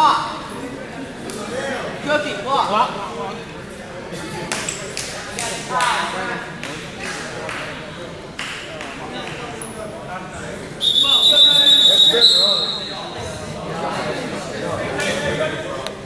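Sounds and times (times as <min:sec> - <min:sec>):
spectators shouting in a gymnasium: 0:10.4 - 0:15.2
loud shrill whistle: 0:10.8 - 0:13.2.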